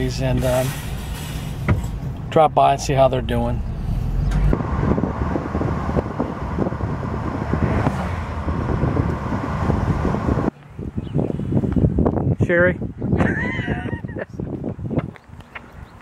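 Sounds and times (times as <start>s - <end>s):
car road and engine noise: 0.0s - 16.0s
outdoor background: 0.0s - 16.0s
wind buffeting microphone: 1.0s - 16.0s.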